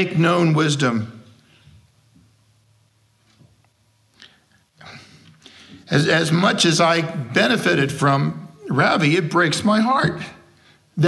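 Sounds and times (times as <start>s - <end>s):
steady low hum: 0.0s - 11.0s
man breathing in: 4.2s - 5.9s.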